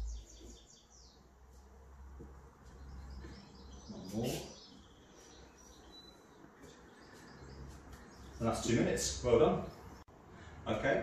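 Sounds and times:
faint bird chirps: 0.0 - 1.3, 2.7 - 8.7.

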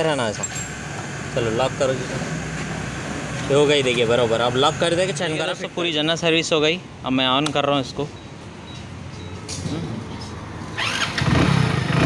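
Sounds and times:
motorcycle engine starting and idling: 10.6 - 12.0.

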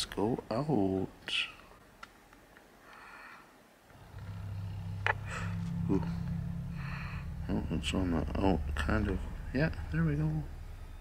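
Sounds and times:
steady low hum: 3.9 - 11.0.

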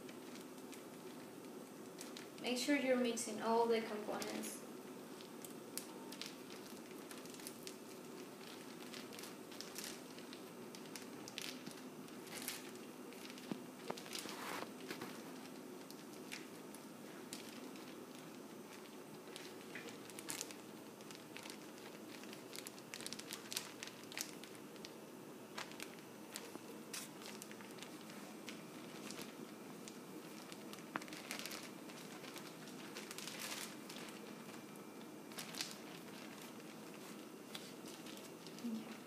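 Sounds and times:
plastic bag crinkling: 0.0 - 39.0.

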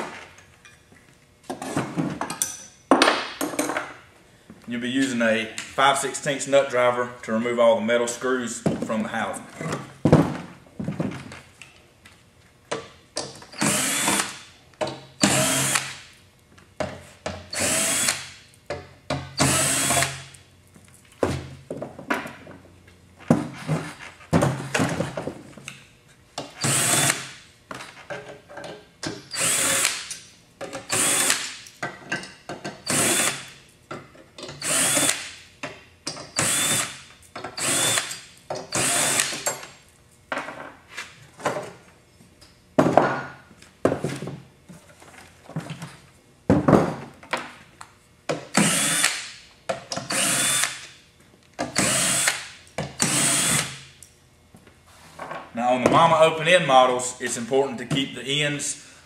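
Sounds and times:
power drill removing screws: 13.6 - 14.4, 15.2 - 16.0, 17.5 - 18.3, 19.4 - 20.2, 26.6 - 27.2, 29.3 - 30.1, 30.9 - 31.5, 32.8 - 33.5, 34.6 - 35.3, 36.4 - 36.9, 37.6 - 39.4, 48.5 - 49.3, 50.1 - 50.8, 51.7 - 53.8.

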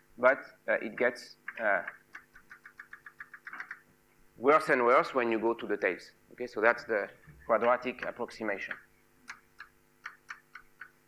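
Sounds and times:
chalk tapping on blackboard: 1.4 - 3.8, 7.6 - 11.0.

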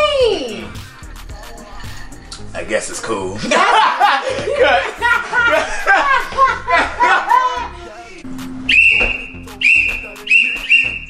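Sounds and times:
metal whistle blasts: 8.6 - 11.0.

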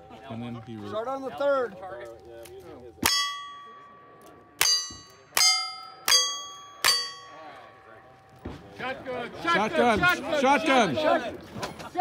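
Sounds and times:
steel target plate ringing: 3.0 - 8.4.

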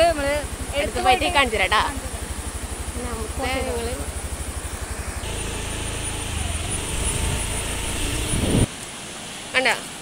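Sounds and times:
water roaring through spillway: 0.0 - 10.0
wind buffeting microphone: 6.3 - 8.7.

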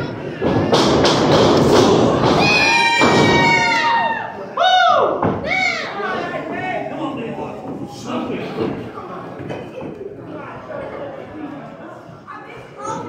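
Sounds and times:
loud shouts: 1.8 - 6.6.

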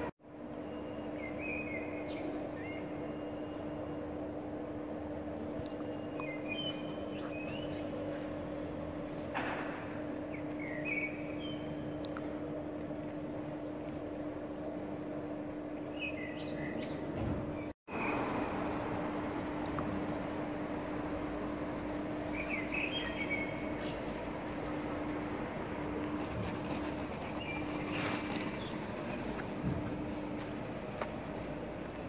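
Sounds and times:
traffic hum: 0.0 - 32.0
bird chirps: 5.8 - 7.9, 22.3 - 24.0.

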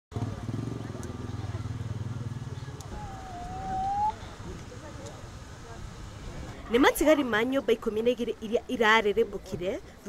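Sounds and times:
drawn-out high tone: 2.9 - 4.2.

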